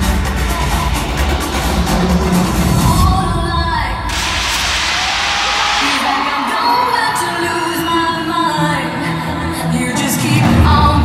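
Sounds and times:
live pop concert music: 0.0s - 11.0s
rush of high noise: 4.0s - 6.6s
audience cheering and screaming: 4.1s - 9.3s.

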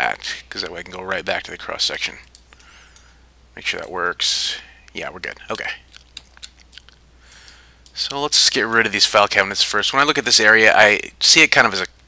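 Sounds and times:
soft intake of breath: 2.6s - 3.3s, 7.2s - 7.8s.

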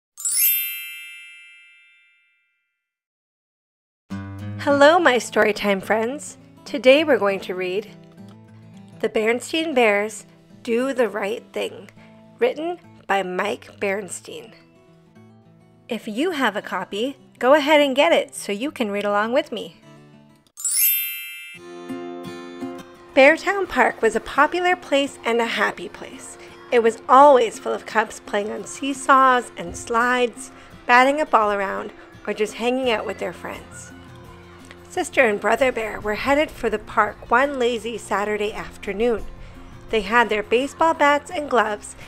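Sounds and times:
magical chime: 0.2s - 2.2s, 20.6s - 21.7s
plucked guitar music: 4.1s - 9.4s, 21.6s - 26.7s.

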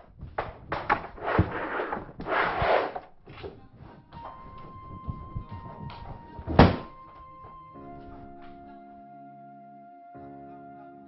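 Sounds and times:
film score with held high tone: 4.2s - 11.0s
soft wind instrument melody: 4.2s - 11.0s
heavy thunk: 5.1s - 7.0s.

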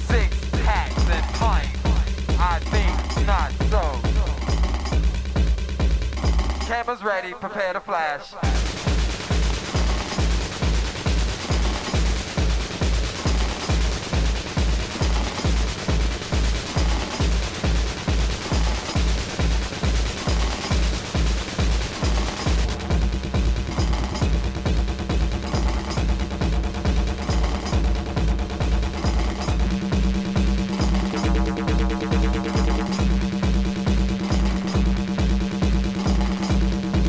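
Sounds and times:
short high synth stabs: 0.0s - 4.9s, 27.2s - 35.1s
four-on-the-floor kick drum: 0.0s - 6.8s, 8.4s - 37.0s
techno music: 0.0s - 37.0s.

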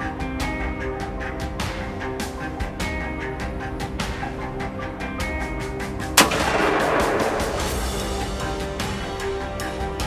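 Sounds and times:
background music with ticking beat: 0.0s - 10.0s
rifle shot echoing: 6.2s - 8.8s.

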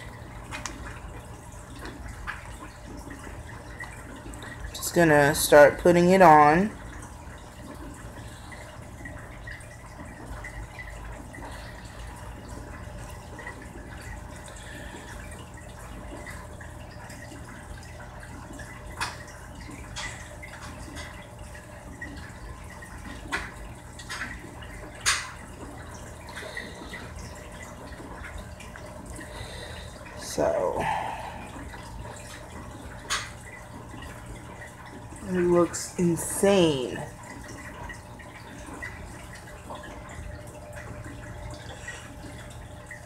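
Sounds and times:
aquarium filter humming: 0.0s - 43.0s
water trickling: 0.0s - 43.0s.

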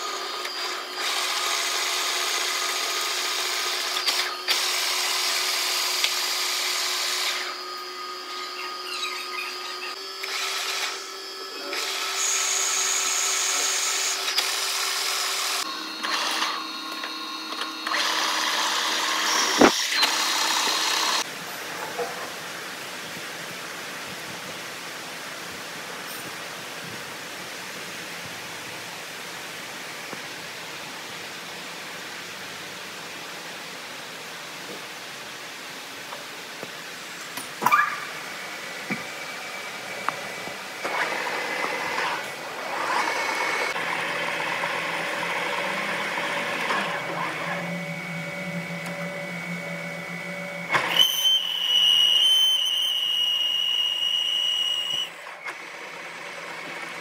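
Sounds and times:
metal lathe cutting steel: 0.0s - 21.3s, 38.2s - 57.0s.

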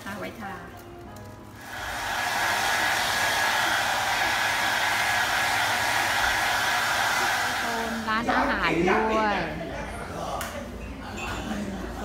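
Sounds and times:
hair dryer blowing: 1.6s - 8.5s.

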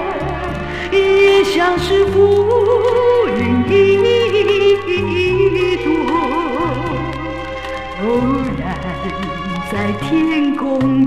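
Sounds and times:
pop ballad instrumental: 0.0s - 11.0s.

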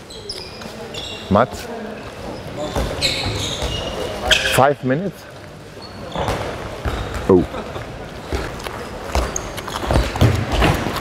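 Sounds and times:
balls bouncing on wooden floor: 8.2s - 11.0s.

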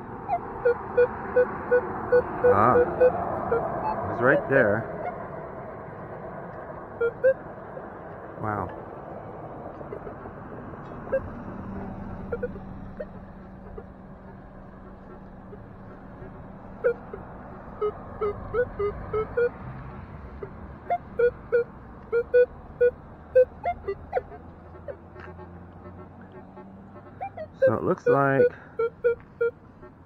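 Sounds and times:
metal detector beeping: 0.6s - 4.0s, 7.0s - 7.4s.

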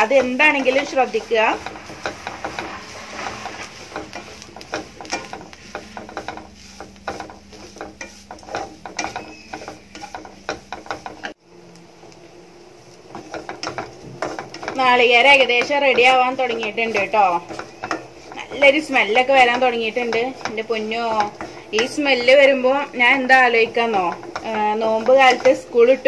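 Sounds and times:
wooden spatula scraping a pan: 0.0s - 11.4s, 12.7s - 26.0s.

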